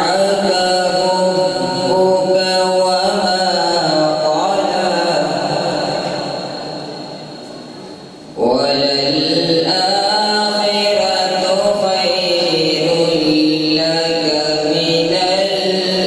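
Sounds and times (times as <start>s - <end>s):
man singing devotional recitation: 0.0s - 6.2s, 8.4s - 16.0s.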